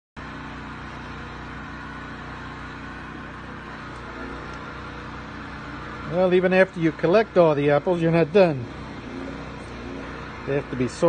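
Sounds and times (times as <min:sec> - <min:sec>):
steady background hum: 0:00.2 - 0:11.0.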